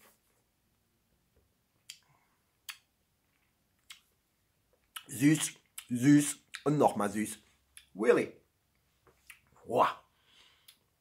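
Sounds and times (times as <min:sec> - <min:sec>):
faint mouth clicks and lip smacks: 0:01.8 - 0:04.1, 0:04.7 - 0:05.9, 0:08.7 - 0:09.5.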